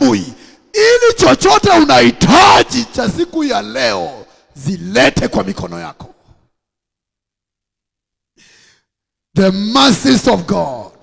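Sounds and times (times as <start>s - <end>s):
man speaking into a microphone: 0.0s - 6.4s, 9.3s - 11.0s.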